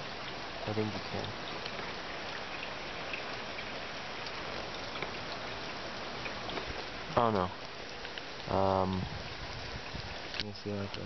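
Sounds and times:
steady rain hiss: 0.0s - 11.0s.

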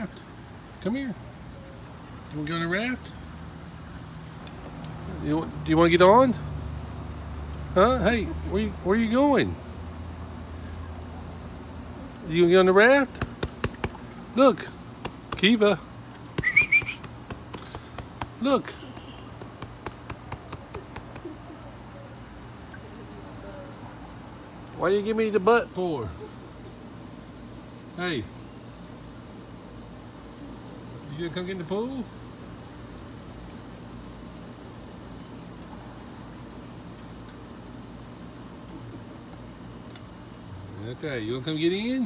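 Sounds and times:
low mechanical hum with hiss: 0.0s - 42.0s
light ticks: 4.4s - 6.2s.

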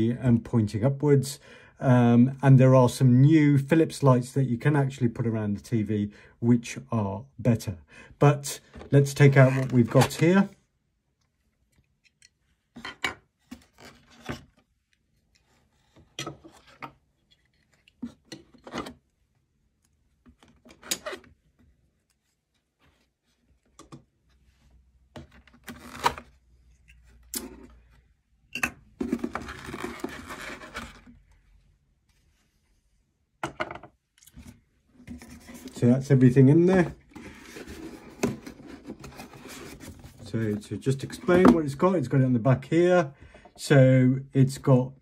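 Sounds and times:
plastic parts scraping: 8.6s - 10.5s, 25.2s - 26.4s, 29.0s - 31.2s, 34.3s - 41.6s
cardboard rustling: 8.7s - 10.5s, 29.0s - 31.3s, 35.0s - 41.7s
parts knocking on wooden table: 33.4s - 34.0s.

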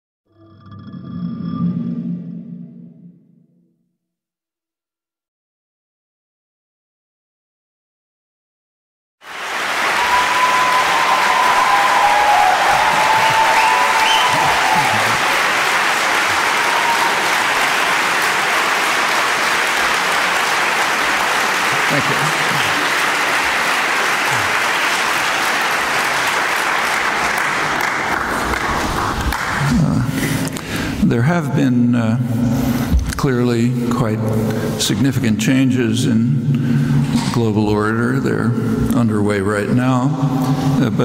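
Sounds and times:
audience applauding: 9.2s - 29.9s.

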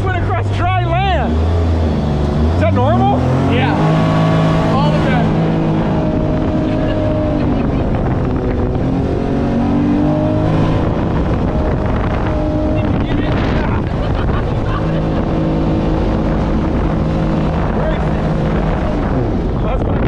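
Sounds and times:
jet boat engine: 0.0s - 20.0s
rush of wind and water: 3.1s - 20.0s.

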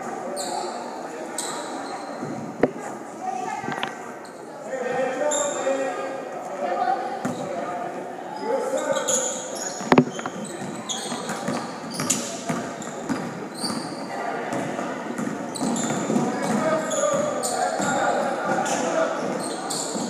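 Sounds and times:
sneakers squeaking: 0.3s - 2.8s, 7.2s - 7.6s, 8.4s - 18.0s, 18.6s - 20.0s.

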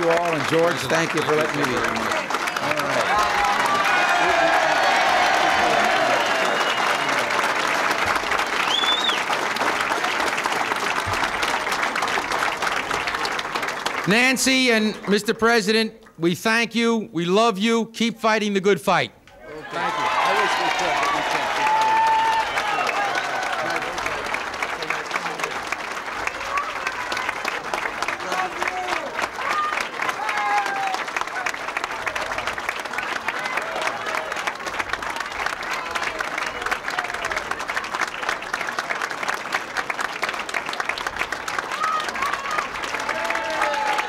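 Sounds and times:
large crowd applauding: 0.0s - 16.2s, 19.4s - 44.0s.

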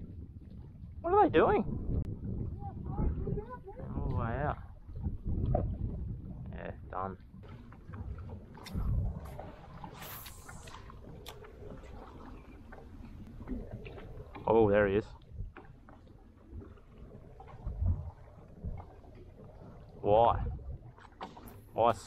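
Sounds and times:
wind buffeting microphone: 0.0s - 22.0s
short hiss: 9.9s - 10.9s.

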